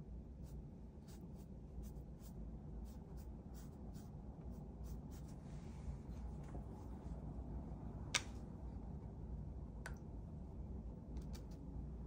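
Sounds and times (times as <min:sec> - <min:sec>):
low room hum: 0:00.0 - 0:12.0
paintbrush scratching on paper: 0:00.4 - 0:05.4.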